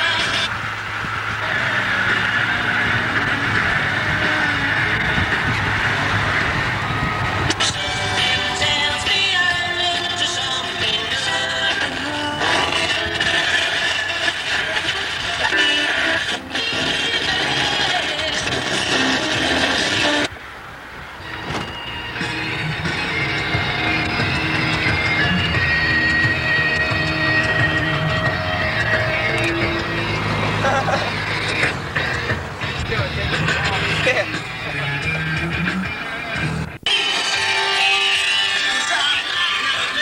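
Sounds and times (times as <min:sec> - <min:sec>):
rock music on car radio: 0:00.0 - 0:20.3, 0:21.1 - 0:40.0
car engine and road noise: 0:00.0 - 0:40.0.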